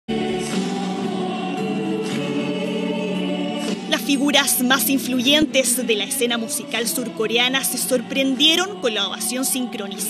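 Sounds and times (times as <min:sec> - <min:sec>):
group of singers: 0:00.1 - 0:10.0
musical accompaniment: 0:00.1 - 0:10.0.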